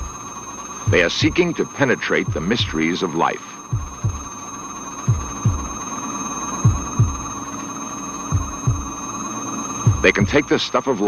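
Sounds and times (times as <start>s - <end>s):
heartbeat thumps: 0.0s - 0.2s, 0.8s - 2.9s, 3.6s - 4.4s, 5.0s - 5.8s, 6.6s - 7.4s, 8.3s - 9.0s, 9.8s - 10.5s
electronic hum: 0.0s - 11.0s.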